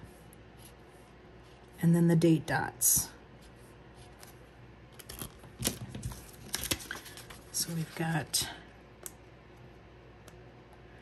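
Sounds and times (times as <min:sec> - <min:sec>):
paper rustling: 0:05.1 - 0:08.0.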